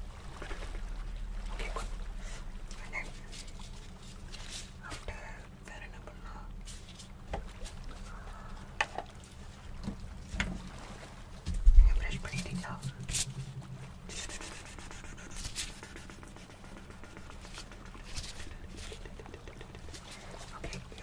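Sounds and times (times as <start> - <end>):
soft rubbing at microphone: 11.6 - 21.0.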